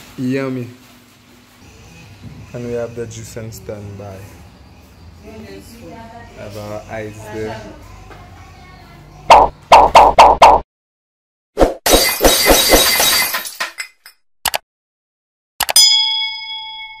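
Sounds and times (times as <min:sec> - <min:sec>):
ringing bell-like ding: 0:15.8 - 0:17.0.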